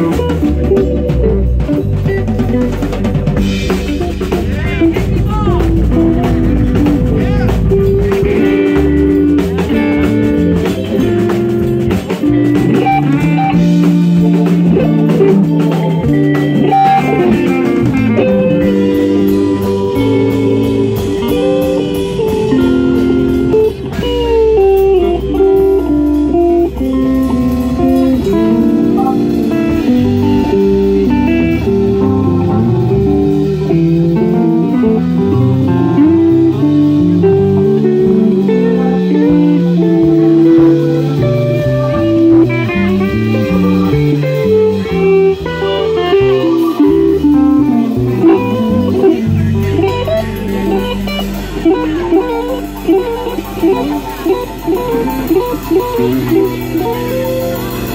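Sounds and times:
drum kit: 0.0s - 57.9s
electric guitar: 0.0s - 57.9s
electric keyboard: 0.0s - 57.9s.

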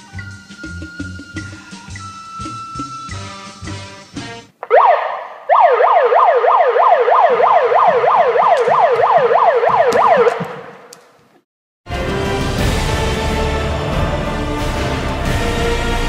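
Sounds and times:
electronic alarm siren: 4.6s - 10.8s.

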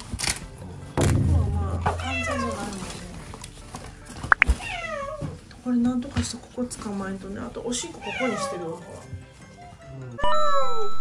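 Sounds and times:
cat meowing: 4.4s - 5.4s, 8.0s - 8.6s.

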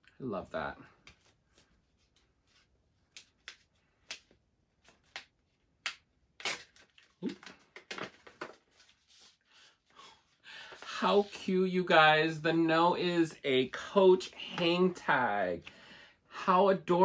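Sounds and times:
paper card crinkling and rustling: 6.4s - 9.4s.

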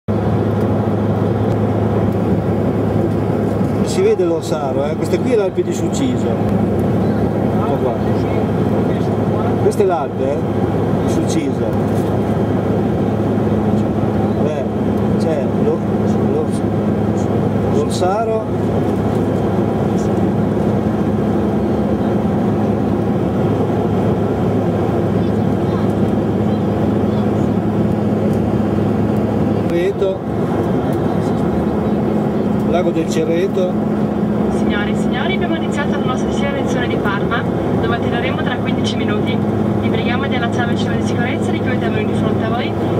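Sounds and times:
propeller and engine hum: 0.0s - 42.9s
airliner cabin noise: 0.1s - 42.9s.

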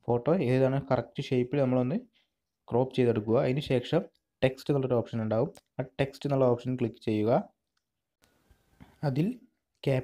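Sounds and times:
man speaking: 0.0s - 7.6s, 9.0s - 10.0s.

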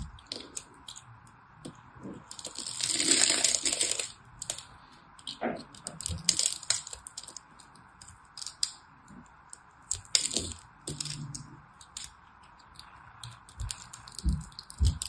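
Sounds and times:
soap cubes crackling and snapping: 0.0s - 15.0s.

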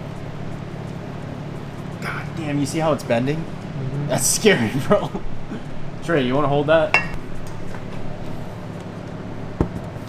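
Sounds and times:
low hum of machinery: 0.0s - 10.0s.

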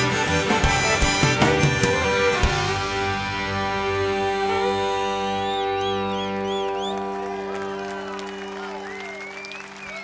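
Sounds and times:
crowd applauding: 5.4s - 10.0s.

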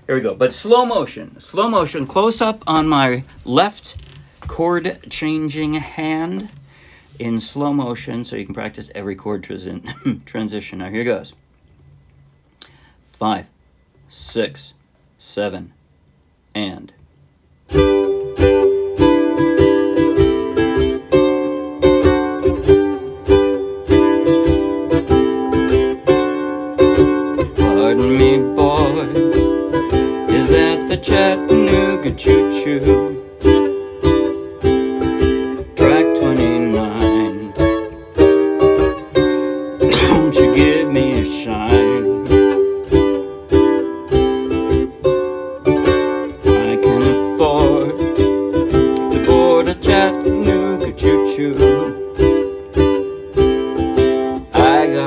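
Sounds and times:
ukulele strumming: 0.1s - 10.2s, 17.6s - 55.0s.

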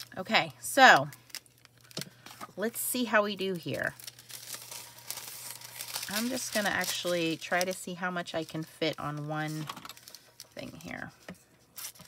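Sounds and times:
foil crinkling and crackling: 0.8s - 2.4s, 3.0s - 11.1s, 11.7s - 12.0s.

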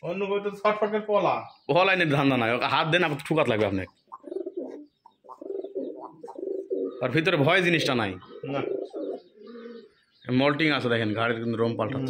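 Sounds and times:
pigeons cooing: 3.8s - 10.3s.

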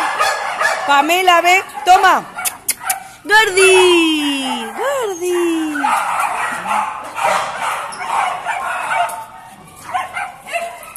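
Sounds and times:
dog yipping: 1.7s - 10.9s
dog whining: 3.5s - 6.8s.

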